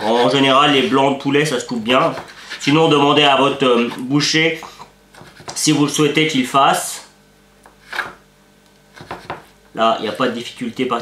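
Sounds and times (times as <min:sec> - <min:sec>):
knife slicing raw meat on board: 0:09.0 - 0:09.5.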